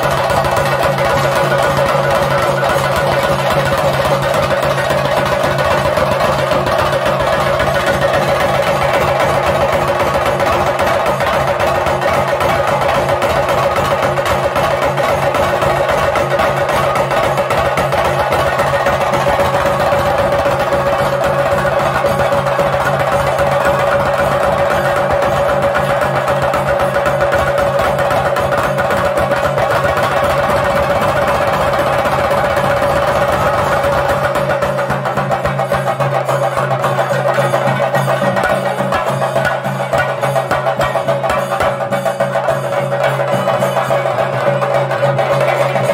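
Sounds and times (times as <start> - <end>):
drums in fast rhythm: 0.0 - 45.9.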